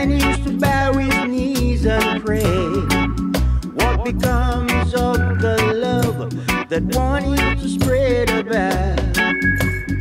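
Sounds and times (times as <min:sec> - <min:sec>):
reggae music with deep bass: 0:00.0 - 0:10.0.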